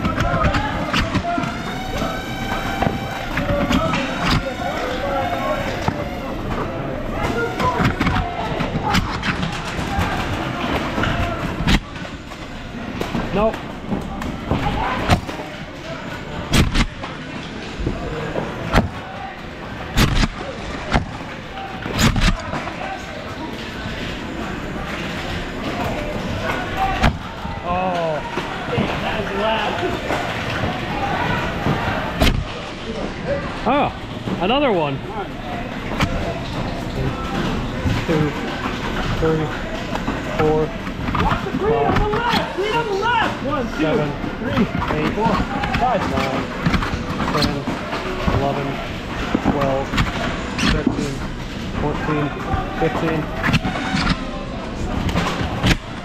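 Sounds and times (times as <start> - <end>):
players' voices: 0.0 - 56.0.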